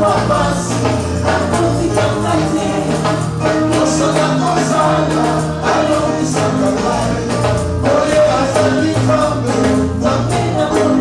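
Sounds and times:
band with drums: 0.0s - 11.0s
women singing together: 0.0s - 11.0s.

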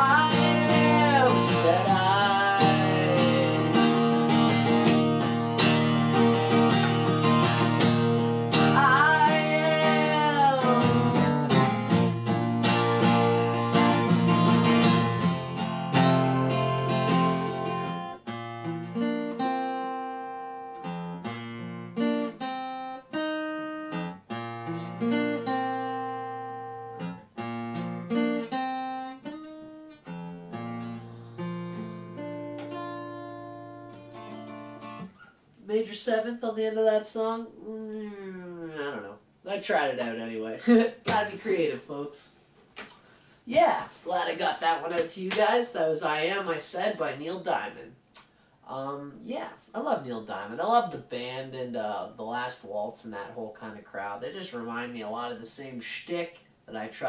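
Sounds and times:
acoustic guitar strummed: 0.0s - 36.1s.

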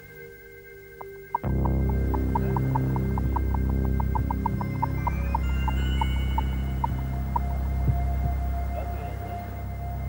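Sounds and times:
quick uneven ticking: 1.4s - 8.4s
car engine hum: 1.4s - 10.0s.

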